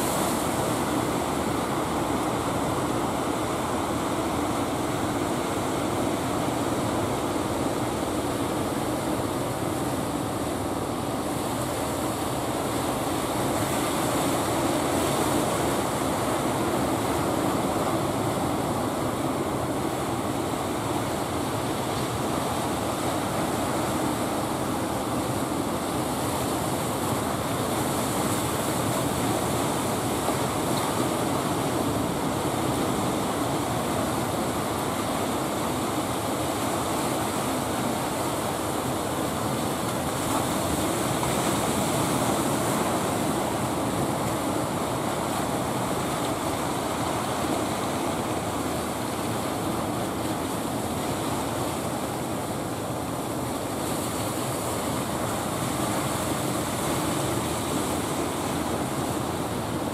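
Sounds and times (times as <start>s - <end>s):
ocean surf breaking on beach: 0.0s - 59.9s.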